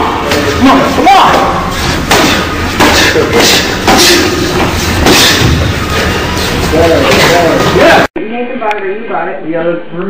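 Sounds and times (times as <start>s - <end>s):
boxing gloves punching: 1.2s - 7.3s.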